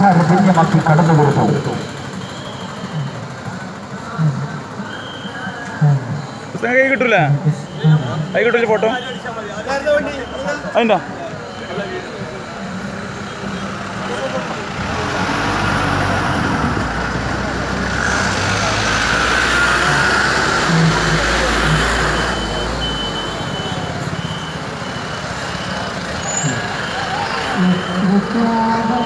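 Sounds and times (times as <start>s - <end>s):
bus engine driving past: 0.0s - 29.0s
street crowd noise: 0.0s - 29.0s.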